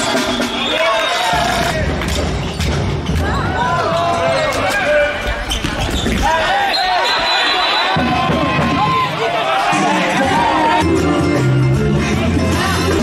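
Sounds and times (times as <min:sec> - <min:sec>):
referee whistle: 0:00.0 - 0:01.7, 0:06.6 - 0:08.2
shoes squeaking on court floor: 0:04.1 - 0:08.0
ball and players thudding: 0:05.2 - 0:06.5
players shouting: 0:06.1 - 0:10.8.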